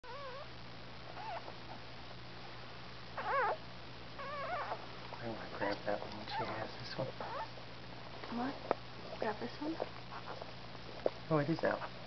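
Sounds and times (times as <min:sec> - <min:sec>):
dog whimpering: 0:00.0 - 0:00.5, 0:01.2 - 0:01.5, 0:03.2 - 0:03.6, 0:04.2 - 0:04.8, 0:06.3 - 0:07.5.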